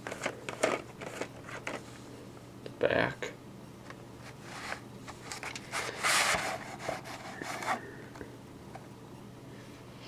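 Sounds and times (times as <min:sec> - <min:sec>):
plastic scraping against cardboard: 0:04.2 - 0:07.8.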